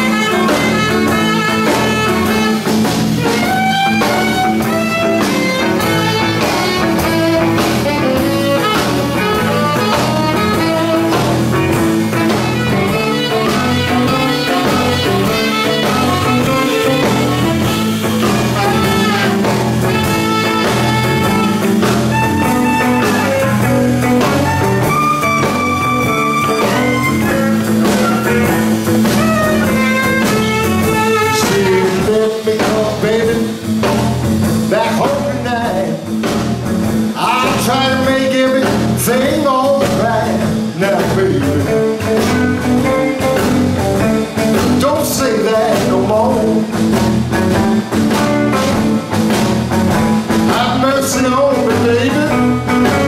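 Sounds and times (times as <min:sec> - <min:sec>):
drum kit: 0:00.0 - 0:53.0
electric bass: 0:00.0 - 0:53.0
electric guitar: 0:00.0 - 0:53.0
saxophone lead: 0:00.0 - 0:53.0.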